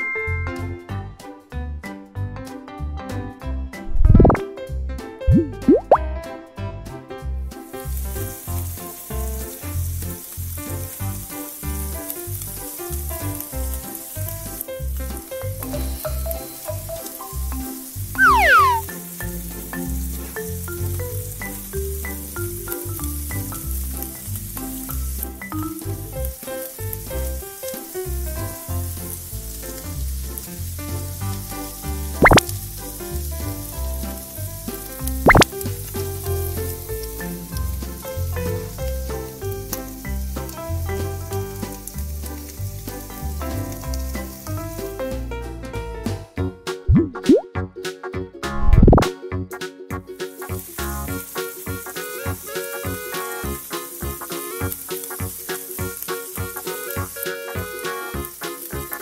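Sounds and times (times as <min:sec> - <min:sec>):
upbeat background music: 0:03.3 - 0:09.6, 0:13.8 - 0:28.0, 0:31.5 - 0:33.0, 0:33.6 - 0:59.0
descending sound effect: 0:03.9 - 0:04.4, 0:05.3 - 0:06.0, 0:18.2 - 0:18.8, 0:46.9 - 0:47.4, 0:48.6 - 0:49.1
batter sizzling in a frying pan: 0:06.9 - 0:46.2, 0:50.2 - 0:59.0.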